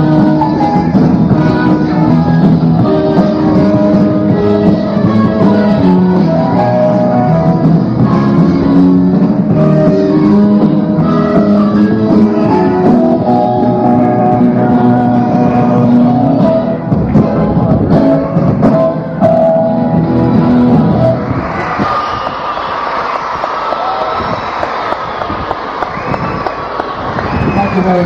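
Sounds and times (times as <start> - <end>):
live pop band with guitars: 0.0 - 28.0
audience applauding and cheering: 21.1 - 28.0.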